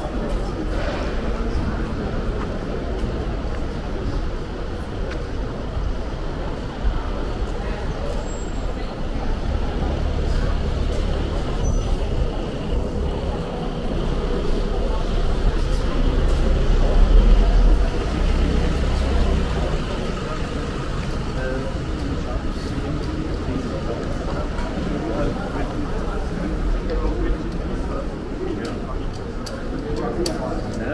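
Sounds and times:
low traffic rumble: 0.0s - 30.9s
murmur of voices: 0.0s - 30.9s.

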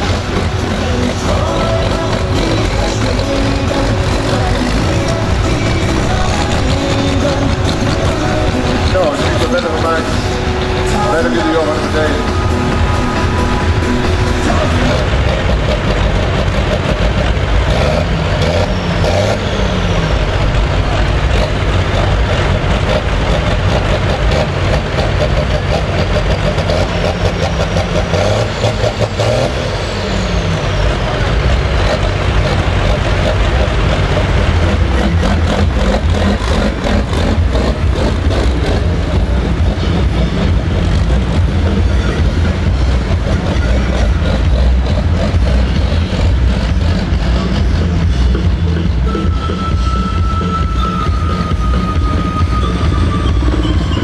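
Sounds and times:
high turbo whine: 0.0s - 54.0s
tractor diesel engine revving: 0.0s - 54.0s.

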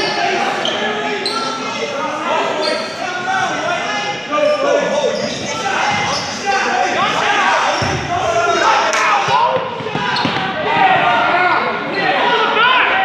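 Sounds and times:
sneaker squeaks: 0.0s - 1.9s, 2.5s - 3.0s, 4.9s - 7.0s, 9.7s - 10.5s
people talking: 0.0s - 13.0s.

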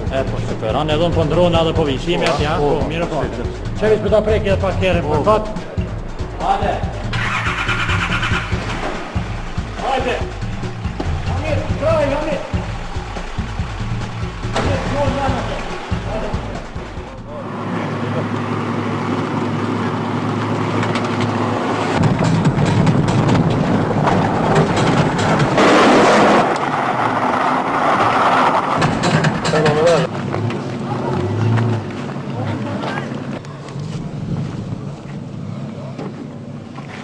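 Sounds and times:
car engine revving: 4.4s - 32.3s
tyres spraying gravel: 8.7s - 17.0s.

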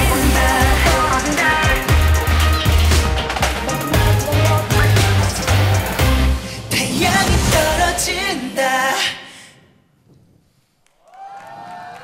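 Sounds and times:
song ending: 0.0s - 9.0s
audience cheering and clapping: 10.9s - 12.0s.

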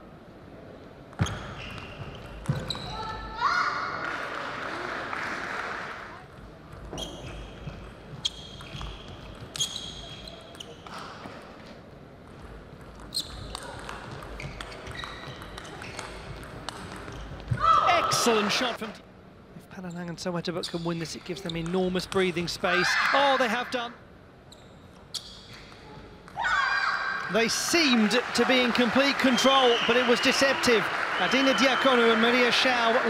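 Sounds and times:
shoes squeaking on floor: 1.2s - 3.2s, 6.8s - 11.5s, 13.0s - 18.3s, 24.4s - 26.1s.

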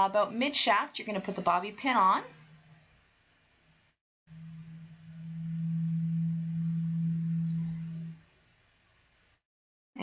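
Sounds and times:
steady low hum: 4.3s - 9.4s.

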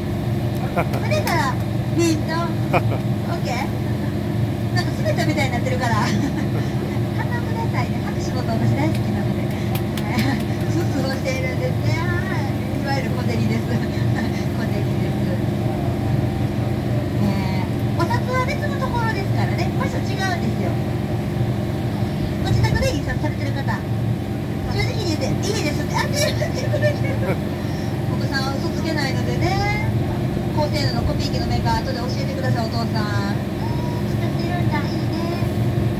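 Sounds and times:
boat engine droning: 0.0s - 35.9s
passengers chatting: 0.0s - 35.9s.

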